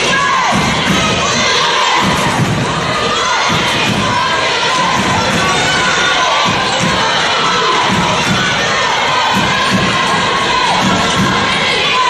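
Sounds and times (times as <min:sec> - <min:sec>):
crowd cheering and shouting: 0:00.0 - 0:12.0
young voices chanting: 0:00.0 - 0:12.0.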